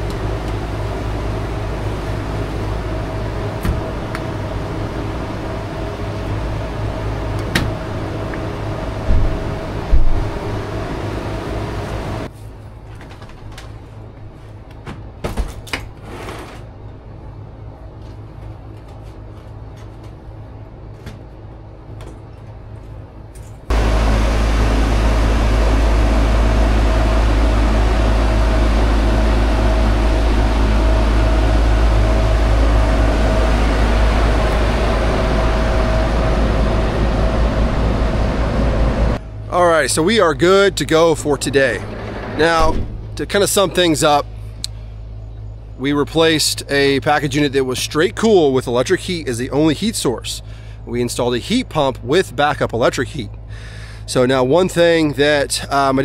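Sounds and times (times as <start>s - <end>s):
compressor and fan rumbling: 0.0s - 56.0s
heat pump humming: 0.0s - 56.0s.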